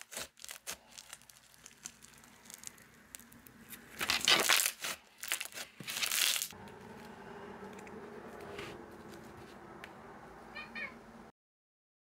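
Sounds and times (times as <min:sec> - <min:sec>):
cat meowing: 0:10.5 - 0:11.0.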